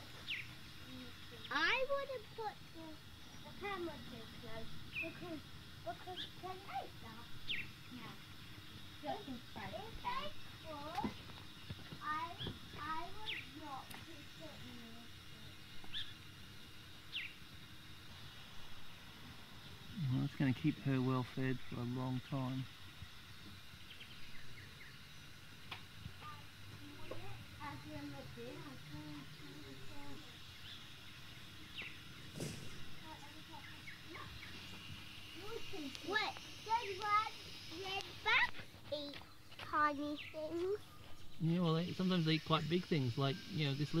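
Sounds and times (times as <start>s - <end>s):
bird chirps: 0.2s - 0.6s, 7.4s - 8.6s, 13.2s - 13.6s, 15.6s - 16.2s, 17.1s - 17.4s, 30.4s - 35.4s
sharp click: 32.4s - 33.0s.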